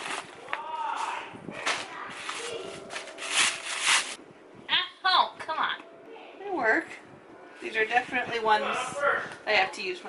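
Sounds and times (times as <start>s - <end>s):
sandals rustling and scraping: 0.0s - 4.2s.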